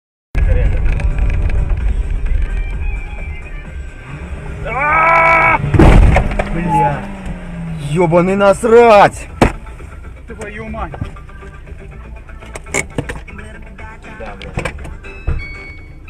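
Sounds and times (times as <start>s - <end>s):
low rumble of car: 0.4s - 16.0s
person shouting: 4.6s - 5.7s
sharp knock: 5.7s - 6.5s.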